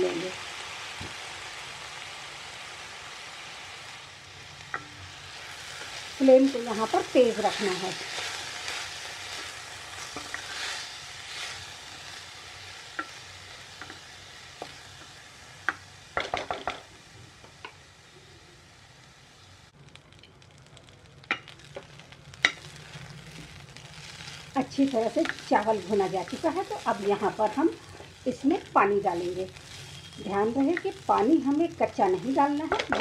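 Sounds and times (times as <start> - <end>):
food sizzling in hot fat: 0.0 - 33.0
spatula knocking and scraping pan: 10.1 - 10.6, 32.7 - 33.0.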